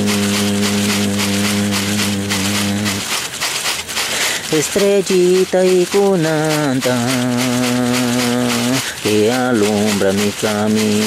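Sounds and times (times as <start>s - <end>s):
leaf-bundle rattle shaken: 0.0s - 11.0s.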